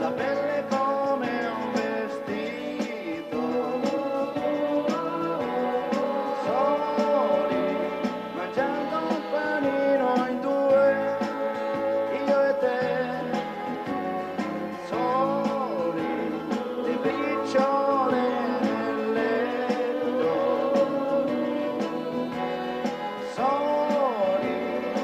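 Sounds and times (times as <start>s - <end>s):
live band playing slow pop song: 0.0s - 25.0s
trumpet: 0.0s - 25.0s.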